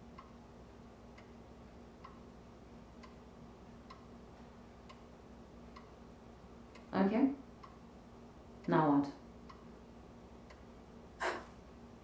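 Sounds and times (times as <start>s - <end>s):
clock ticking faintly: 0.0s - 6.0s, 6.6s - 7.9s, 8.5s - 9.8s, 10.4s - 10.8s
low steady hum: 0.0s - 12.0s.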